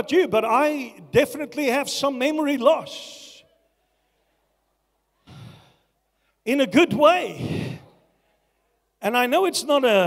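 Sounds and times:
man sighing into microphone: 7.4 - 8.0.

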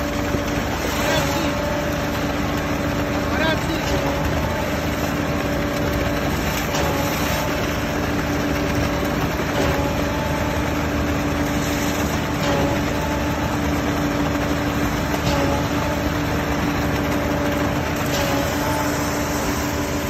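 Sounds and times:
concrete pump truck running: 0.0 - 20.0
pump whine: 0.0 - 20.0.

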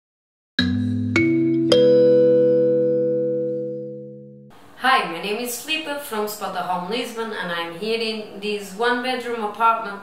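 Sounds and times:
musical logo jingle chord: 0.6 - 4.5.

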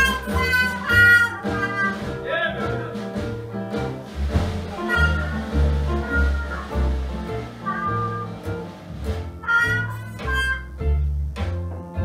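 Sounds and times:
trumpet phrases: 0.0 - 3.0, 4.7 - 7.0, 7.6 - 8.5, 9.4 - 10.8
drums: 0.0 - 12.0
low bass line: 0.0 - 12.0.

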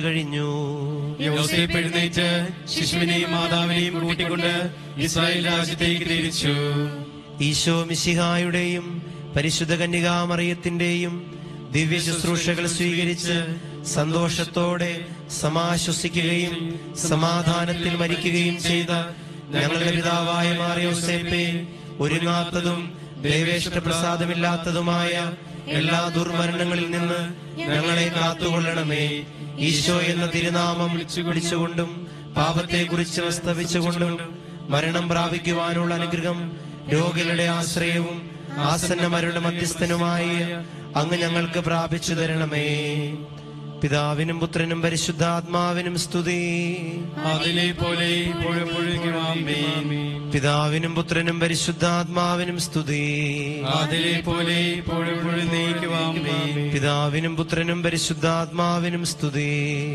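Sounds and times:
man chanting a prayer: 0.0 - 59.9
sustained musical drone: 0.0 - 59.9.

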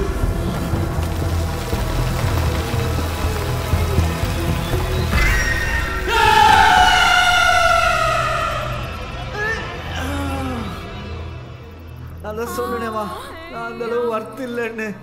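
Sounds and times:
low rumbling drone: 0.0 - 12.7
high sustained notes sliding down: 5.9 - 12.6.

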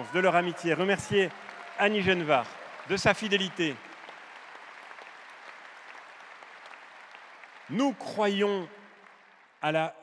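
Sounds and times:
audience applauding: 0.0 - 9.9.

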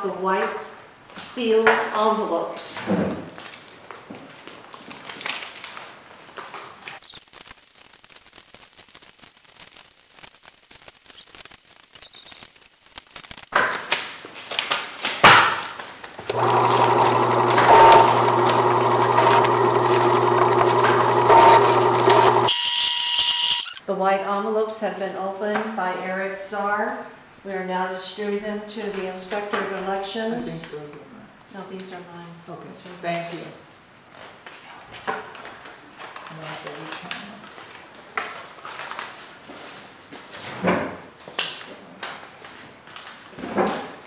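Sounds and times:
electric letter opener motor: 16.3 - 23.8
paper envelopes rustling: 37.5 - 39.5.

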